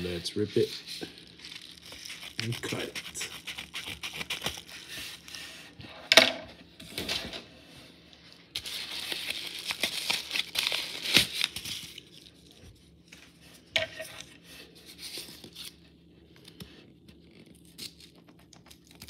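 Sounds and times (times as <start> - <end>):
envelope crinkling and rustling: 1.1 - 5.4, 8.5 - 13.4
paper mailer ripping: 1.4 - 5.3, 8.6 - 12.2.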